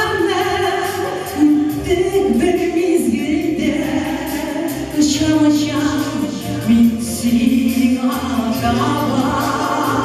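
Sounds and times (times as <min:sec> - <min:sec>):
pop music with steady beat: 0:00.0 - 0:10.0
woman singing into microphone: 0:00.0 - 0:10.0.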